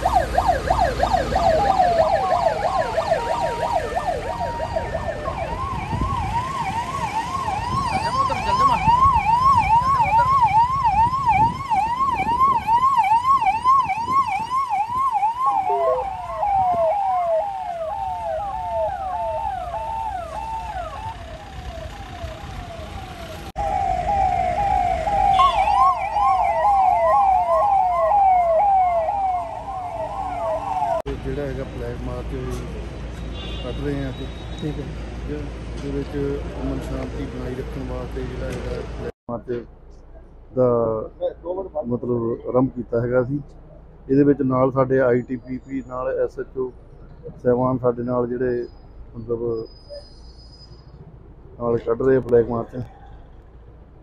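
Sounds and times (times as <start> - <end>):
police yelp sirens: 0.0 - 32.7
vehicle engines rumbling: 0.0 - 54.0.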